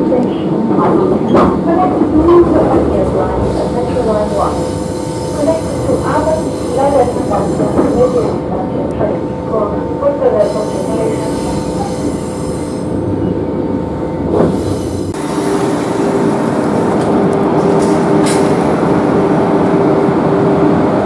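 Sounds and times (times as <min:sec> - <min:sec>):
train hum and rumble: 0:00.0 - 0:21.0
train wheels squealing on rails: 0:03.6 - 0:08.4, 0:10.4 - 0:13.4.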